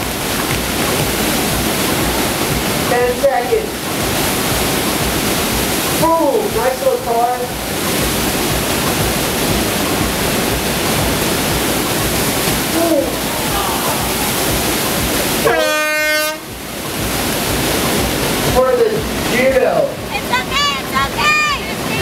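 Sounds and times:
rushing water: 0.0s - 22.0s
horn: 15.4s - 16.5s.

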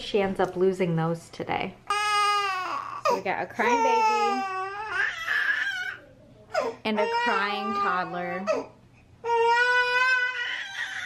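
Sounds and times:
toddler crying: 1.9s - 11.0s.

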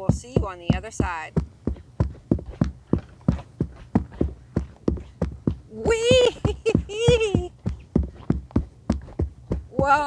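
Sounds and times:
running footsteps on wooden deck: 0.0s - 10.0s.

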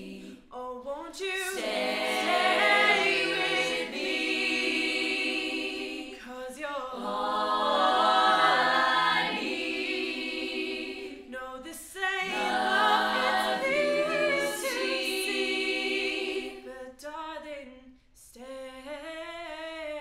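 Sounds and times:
female a cappella group singing: 0.0s - 20.0s.

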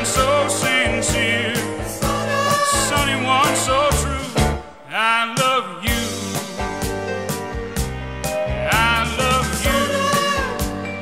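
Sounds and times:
song with melodic lead and drums: 0.0s - 11.0s.

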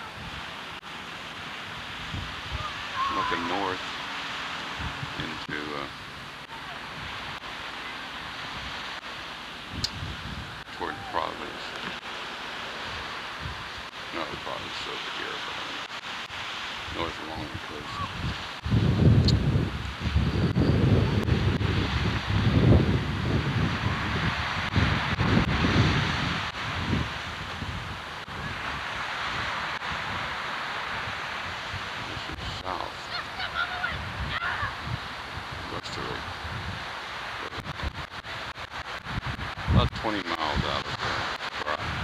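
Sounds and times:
surf washing on shore: 0.0s - 42.0s
wind buffeting microphone: 0.0s - 42.0s.

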